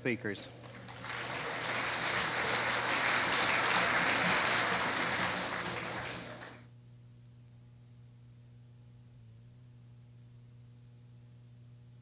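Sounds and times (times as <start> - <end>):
audience applauding: 0.6 - 6.6.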